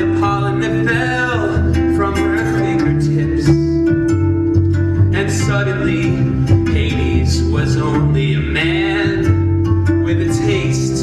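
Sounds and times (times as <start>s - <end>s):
bass line: 0.0s - 11.0s
plucked acoustic guitar: 0.0s - 11.0s.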